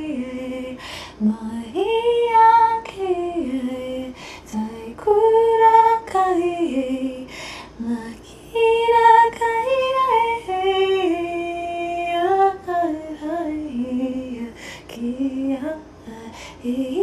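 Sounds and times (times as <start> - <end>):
woman singing wordless syllables: 0.0 - 17.0.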